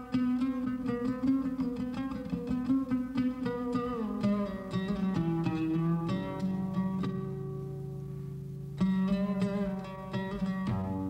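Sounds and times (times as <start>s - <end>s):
plucked string instrument melody: 0.0s - 11.0s.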